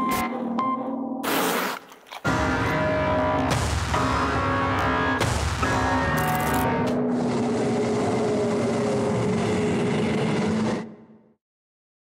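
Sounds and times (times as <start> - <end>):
cinematic drone rumble: 2.3 - 11.3.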